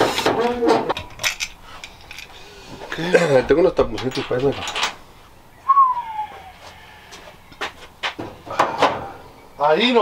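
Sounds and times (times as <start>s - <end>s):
metal tools clicking and knocking: 0.0s - 2.4s, 3.8s - 5.0s
falling whistle-like tone: 5.6s - 6.5s.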